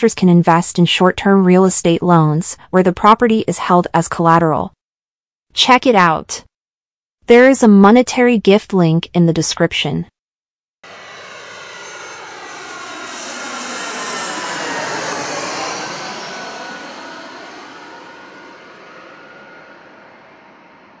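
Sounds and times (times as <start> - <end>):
jet airliner passing overhead: 10.8 - 21.0.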